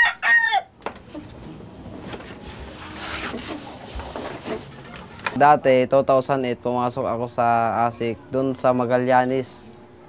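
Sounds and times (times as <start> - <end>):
rooster crowing: 0.0 - 0.8.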